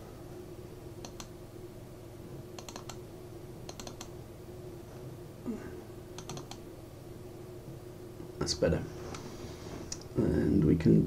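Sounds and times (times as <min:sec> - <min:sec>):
steady low hum: 0:00.0 - 0:11.0
computer mouse clicks: 0:01.0 - 0:01.3, 0:02.6 - 0:03.0, 0:03.7 - 0:04.2, 0:06.2 - 0:06.6.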